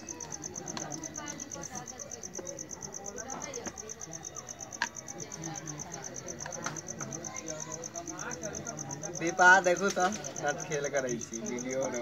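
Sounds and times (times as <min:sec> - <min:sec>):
crickets chirping: 0:00.0 - 0:12.0
faint voices: 0:00.0 - 0:12.0.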